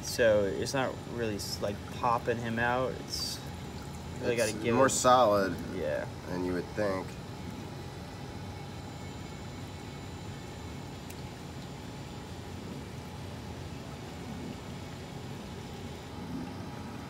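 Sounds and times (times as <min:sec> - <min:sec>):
aquarium pumps and water flow: 0:00.0 - 0:17.0
faint high whine: 0:00.0 - 0:17.0.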